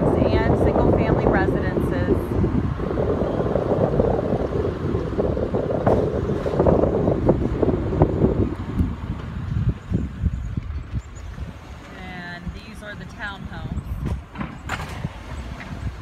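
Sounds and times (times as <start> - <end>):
car road noise: 0.0 - 16.0
wind buffeting microphone: 0.0 - 16.0.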